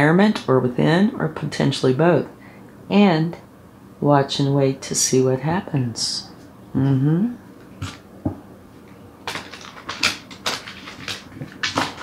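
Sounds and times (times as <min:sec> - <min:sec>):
cards being shuffled: 0:09.3 - 0:12.0.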